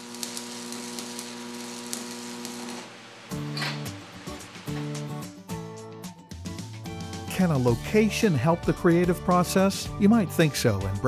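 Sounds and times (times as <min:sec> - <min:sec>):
arc welding crackling sizzle: 0:00.0 - 0:05.4
music: 0:03.2 - 0:11.0.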